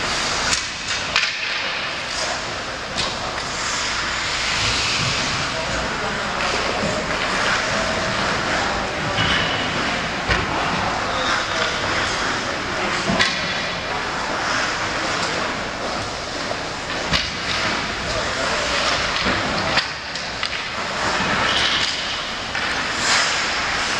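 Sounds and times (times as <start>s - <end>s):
indistinct voices: 0.0s - 23.9s
skates scraping ice: 0.0s - 23.9s.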